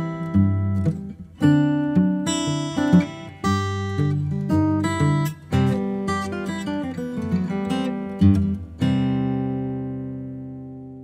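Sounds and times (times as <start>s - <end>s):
acoustic guitar chord ringing: 0.0s - 11.0s.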